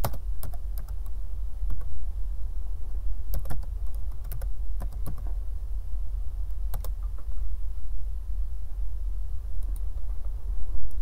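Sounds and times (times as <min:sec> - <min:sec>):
computer keyboard typing: 0:00.0 - 0:01.0, 0:03.3 - 0:05.3, 0:06.7 - 0:07.3
steady low hum: 0:00.0 - 0:11.0.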